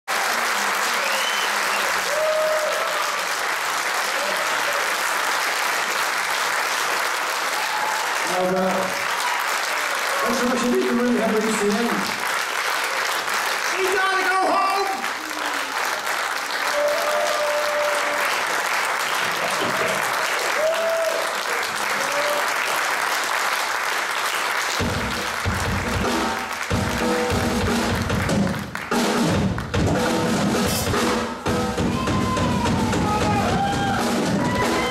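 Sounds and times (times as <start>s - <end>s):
audience applauding and cheering: 0.0s - 34.9s
drums: 24.6s - 34.9s
live rock band playing: 24.8s - 34.9s.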